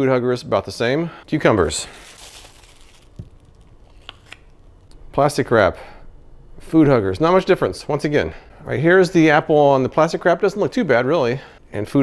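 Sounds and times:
plastic wrap crumpling: 0:01.6 - 0:04.4.

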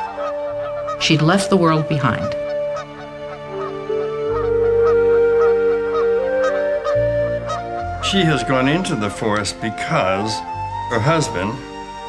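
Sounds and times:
geese honking: 0:00.0 - 0:12.0
music of long held notes: 0:00.0 - 0:12.0.

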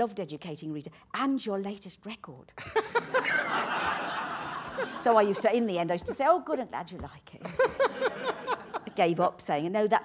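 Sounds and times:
audience laughing: 0:02.6 - 0:06.7, 0:07.4 - 0:09.1.

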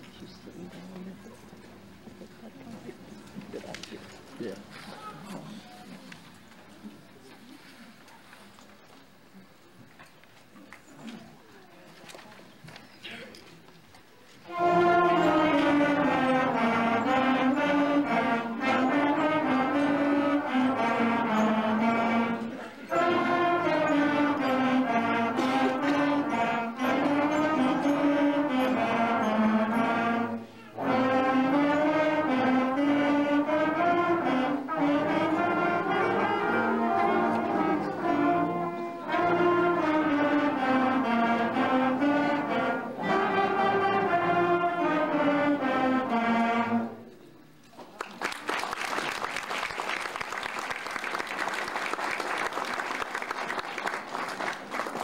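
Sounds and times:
concert band of brass and woodwinds: 0:14.3 - 0:47.2, 0:48.2 - 0:55.0.

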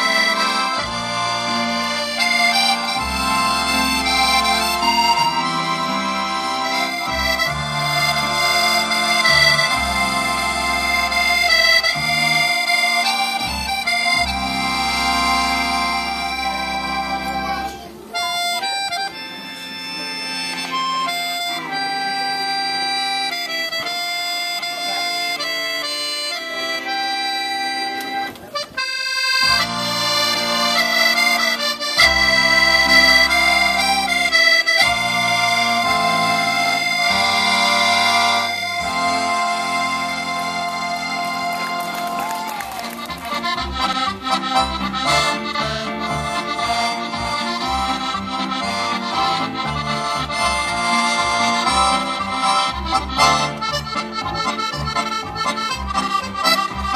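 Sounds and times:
traditional accordion music: 0:00.0 - 0:56.9.

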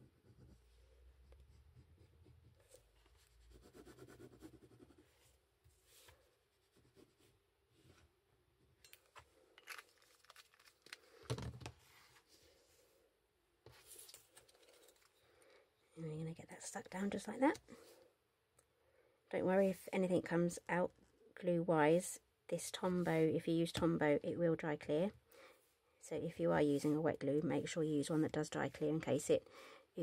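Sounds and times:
paper rustle: 0:09.7 - 0:12.4, 0:13.7 - 0:15.2
faint rustling and small clicks: 0:13.6 - 0:15.6.

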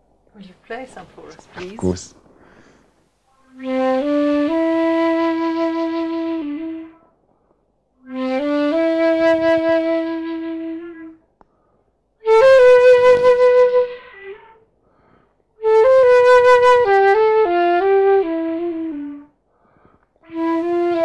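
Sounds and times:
solo flute playing: 0:03.3 - 0:07.2, 0:08.0 - 0:11.3, 0:12.2 - 0:14.6, 0:15.6 - 0:19.4, 0:20.2 - 0:21.0.

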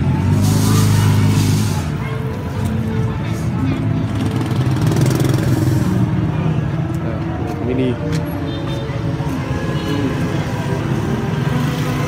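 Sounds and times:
motorbike and traffic rumble: 0:00.0 - 0:12.0.

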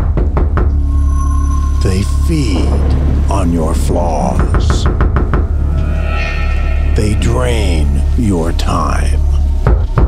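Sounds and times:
low music drone: 0:00.0 - 0:10.0
thin high held tone: 0:00.8 - 0:02.9, 0:05.6 - 0:08.5.

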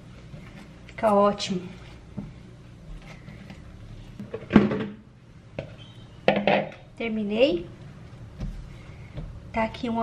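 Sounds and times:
hands kneading dough: 0:07.8 - 0:10.0.

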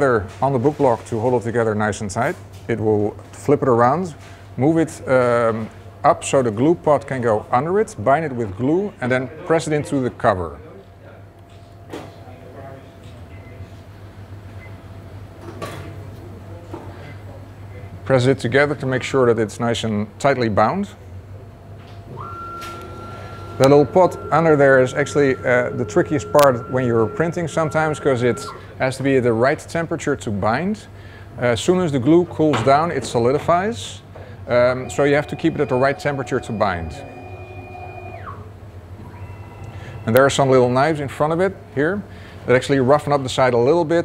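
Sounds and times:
low machine hum: 0:02.7 - 0:43.7
machine hum: 0:21.0 - 0:29.5, 0:33.0 - 0:42.5
high machine whine sliding down: 0:22.1 - 0:28.7.

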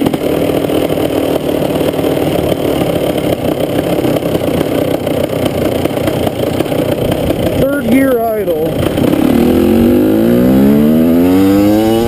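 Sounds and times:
dirt bike engine accelerating: 0:00.0 - 0:12.0.

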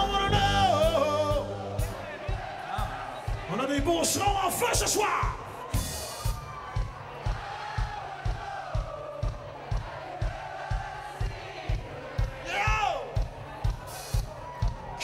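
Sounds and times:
crowd cheering and shouting: 0:00.0 - 0:15.0
kick drum beat: 0:01.3 - 0:15.0.

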